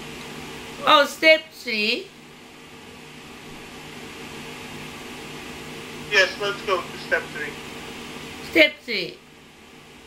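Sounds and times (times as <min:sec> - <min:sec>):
low steady hum: 0:00.0 - 0:10.0
room hiss: 0:00.0 - 0:10.0.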